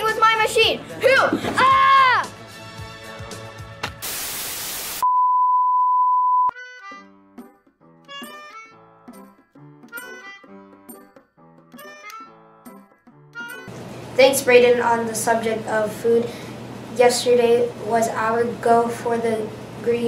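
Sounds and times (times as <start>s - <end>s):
television static hiss: 4.0s - 5.0s
high-pitched test-tone beep: 5.0s - 6.5s
light stand-by music tune: 6.5s - 13.8s.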